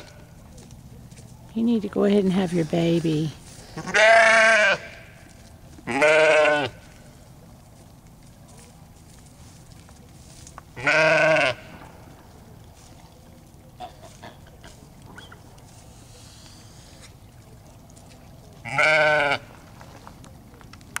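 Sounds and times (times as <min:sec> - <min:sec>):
sheep bleating: 0:03.8 - 0:05.2, 0:05.9 - 0:06.8, 0:10.8 - 0:11.7, 0:18.6 - 0:19.5.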